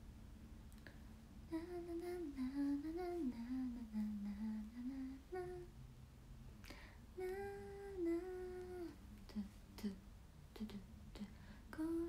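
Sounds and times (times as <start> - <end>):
woman humming a tune: 1.5 - 5.7, 7.2 - 10.0, 10.6 - 12.0.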